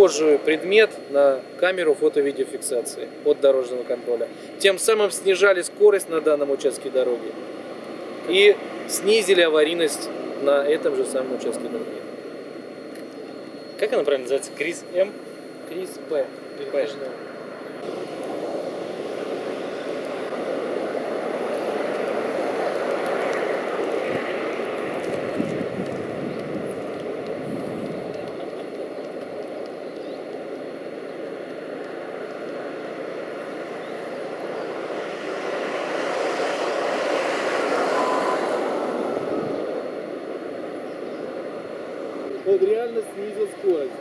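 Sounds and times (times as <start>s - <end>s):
vehicles passing by: 17.8s - 28.8s, 32.0s - 42.4s.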